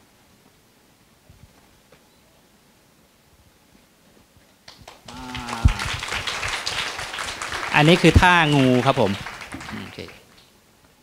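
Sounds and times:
audience applause: 0:04.7 - 0:10.4
person calling out: 0:05.1 - 0:05.9.

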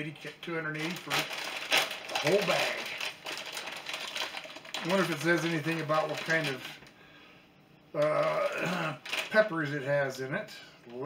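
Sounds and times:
snack bag being torn open: 0:00.8 - 0:06.8, 0:09.0 - 0:09.4.

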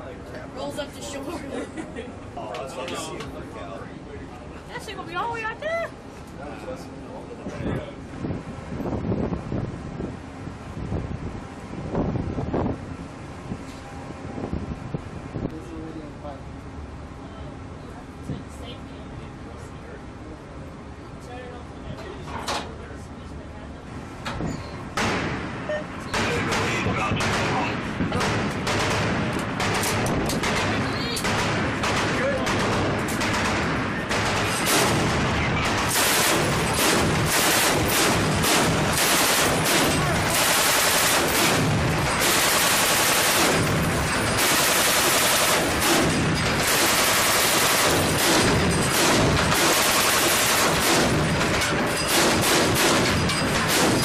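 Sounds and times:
machine gun firing bursts: 0:26.2 - 0:54.0.

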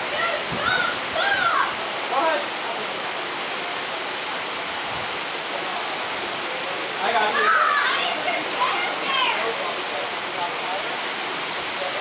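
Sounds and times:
distant shouts: 0:00.0 - 0:01.8
waterfall rushing into pool: 0:00.0 - 0:12.0.

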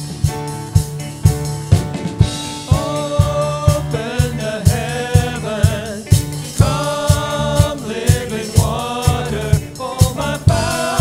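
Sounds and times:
drum hits: 0:00.0 - 0:11.0
guitars bass and keyboard: 0:00.0 - 0:11.0
voices singing together: 0:02.6 - 0:11.0.

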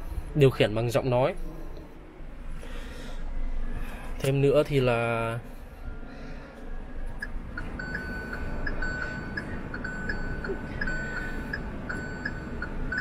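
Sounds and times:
car dashboard warning beeps: 0:06.9 - 0:13.0.

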